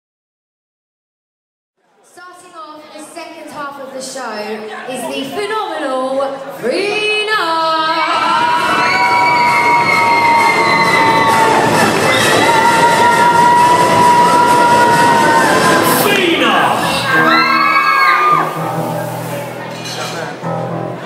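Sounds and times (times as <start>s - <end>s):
long high-pitched screams: 7.9s - 15.8s, 16.9s - 18.6s
audience cheering: 7.9s - 18.6s
rising whoops: 8.0s - 15.8s, 17.1s - 18.5s.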